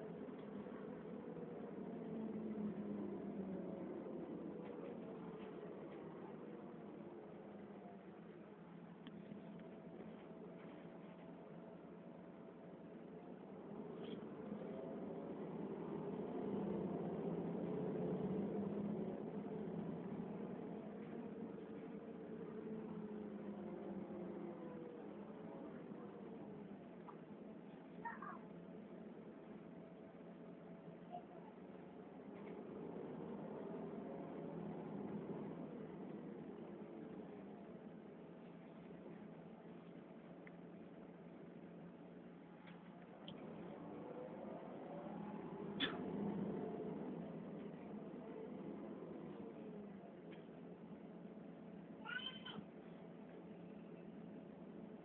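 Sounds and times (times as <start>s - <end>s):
faint background rumble: 0.0s - 55.0s
steady low hum: 0.0s - 55.0s
high-pitched animal call: 28.0s - 28.5s, 52.0s - 52.7s
short high-pitched cry: 52.0s - 52.6s.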